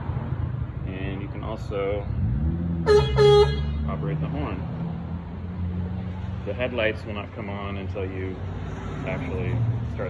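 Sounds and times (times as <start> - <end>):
scooter horn beeping: 2.9 - 3.8.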